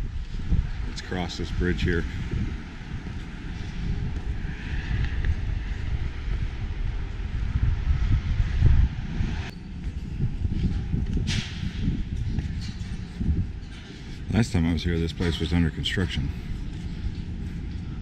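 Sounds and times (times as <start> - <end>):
road traffic: 0.0 - 18.0
wind buffeting microphone: 0.0 - 18.0.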